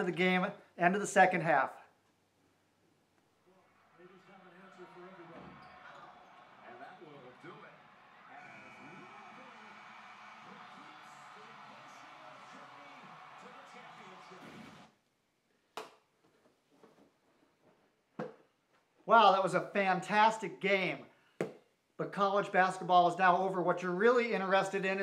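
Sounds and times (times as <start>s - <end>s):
television sports commentary: 0.0s - 1.9s, 3.4s - 15.0s, 19.0s - 21.2s, 22.0s - 25.0s
arena crowd noise: 3.4s - 14.9s, 19.1s - 20.9s.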